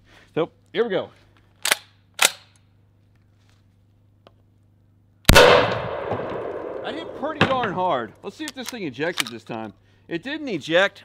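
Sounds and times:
sharp gun handling clicks: 1.4s - 2.7s, 8.3s - 9.7s.

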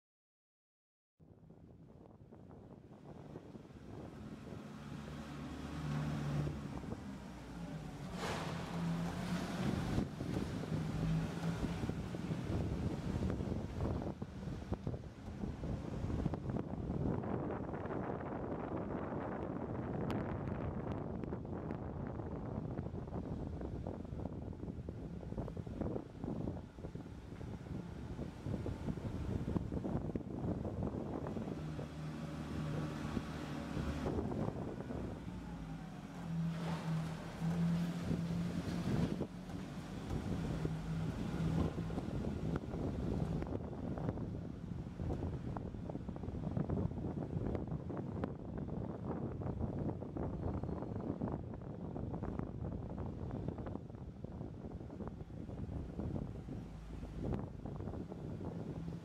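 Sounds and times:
car engine and tyre rumble: 1.2s - 59.0s.

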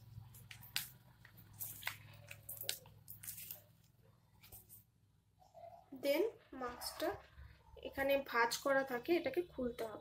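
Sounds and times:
mask packet crinkling: 0.2s - 4.8s.

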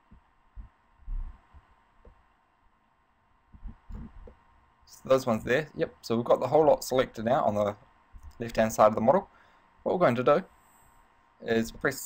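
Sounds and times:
soft low thumps: 0.0s - 2.2s, 3.4s - 4.6s
faint background hum: 0.0s - 12.0s.

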